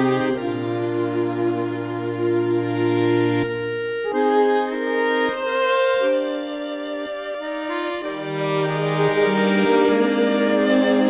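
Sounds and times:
accordion: 0:00.0 - 0:11.0
fiddle: 0:00.0 - 0:11.0.

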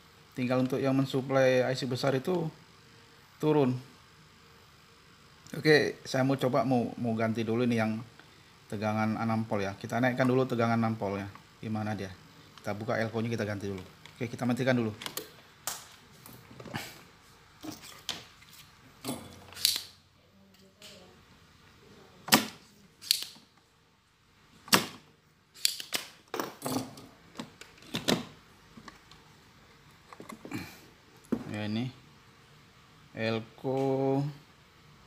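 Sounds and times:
loud snaps: 0:19.6 - 0:20.0, 0:22.3 - 0:23.5.

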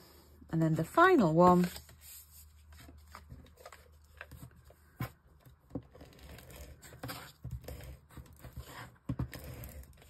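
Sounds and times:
paper rustling and scraping: 0:01.2 - 0:10.0.

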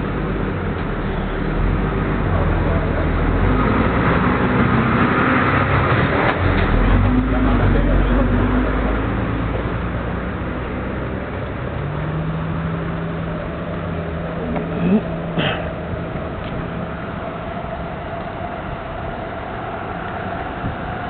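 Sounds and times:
bus engine running: 0:00.0 - 0:21.0
rushing noise of passing bus: 0:00.0 - 0:21.0.

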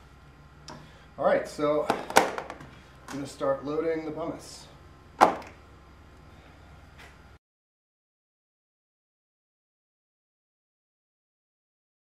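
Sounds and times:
plastic bucket set down thunk: 0:01.9 - 0:02.6, 0:05.2 - 0:05.5.

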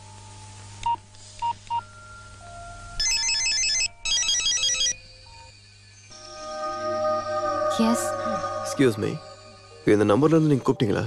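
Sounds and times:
electronic phone ringtone: 0:01.8 - 0:05.5
phone keypad beeps: 0:03.0 - 0:05.0.

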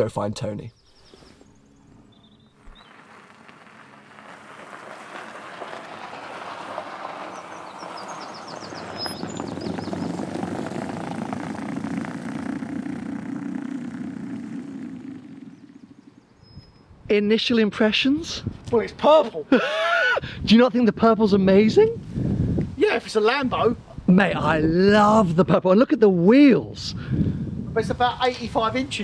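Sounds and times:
faint bird chirps: 0:00.7 - 0:03.0, 0:07.3 - 0:10.2, 0:15.3 - 0:17.0
car tyre and road noise passing: 0:01.4 - 0:16.9.

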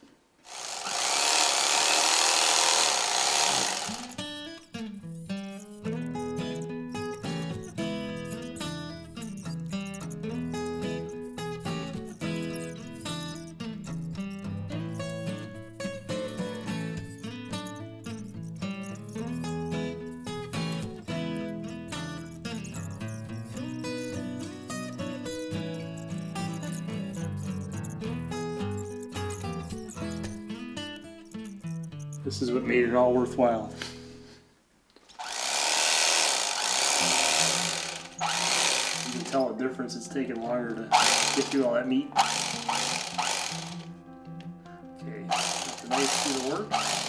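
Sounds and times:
plucked guitar-like background music: 0:04.1 - 0:34.0, 0:39.1 - 0:47.0.

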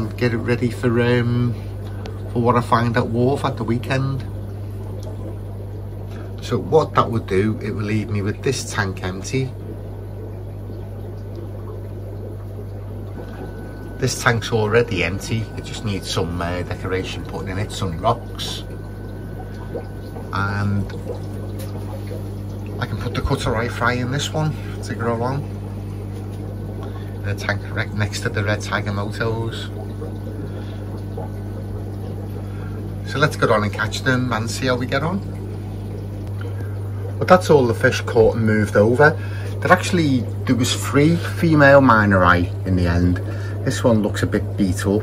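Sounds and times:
filter low hum: 0:00.0 - 0:45.0
water trickling: 0:00.0 - 0:45.0.

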